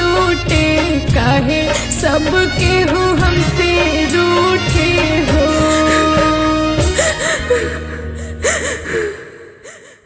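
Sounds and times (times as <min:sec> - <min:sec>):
song backing music: 0:00.0 - 0:09.4
woman sobbing: 0:05.5 - 0:10.0.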